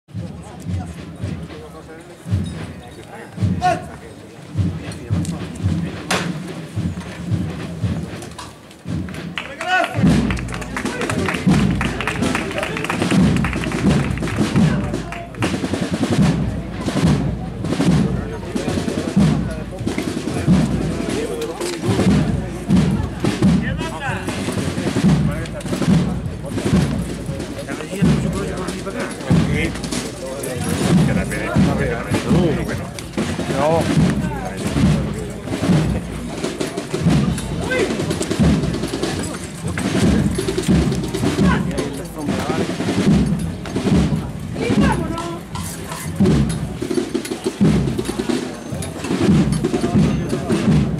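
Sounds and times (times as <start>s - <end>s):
crowd voices: 0.0s - 50.9s
slow drumbeat: 0.1s - 50.9s
procession band music: 8.8s - 50.9s.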